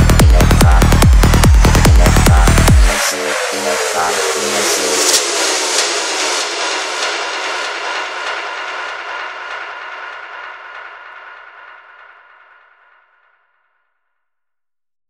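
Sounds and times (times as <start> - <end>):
falling electronic tone: 0.0 - 5.7
synth noise sweep: 0.0 - 11.3.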